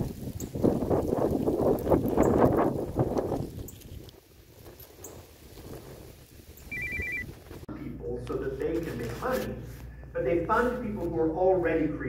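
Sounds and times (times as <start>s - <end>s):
alternating electronic alert tones: 6.7s - 7.3s.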